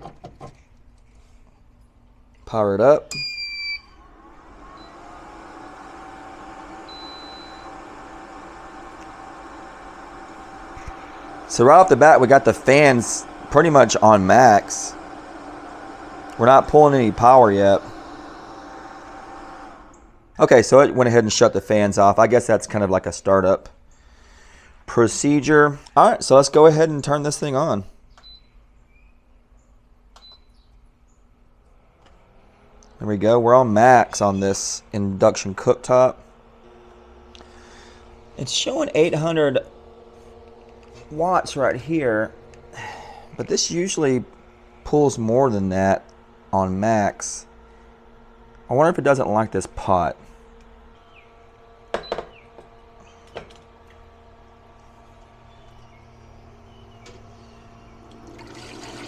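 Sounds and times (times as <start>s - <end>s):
cooling fans running: 0.1s - 59.0s.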